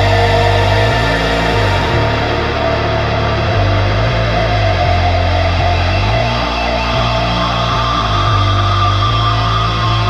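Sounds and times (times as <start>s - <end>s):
rock music with guitar and bass: 0.0s - 10.0s.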